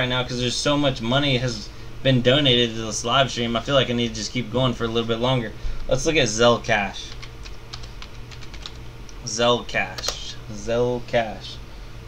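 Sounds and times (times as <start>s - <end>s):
keyboard typing: 7.1s - 8.8s.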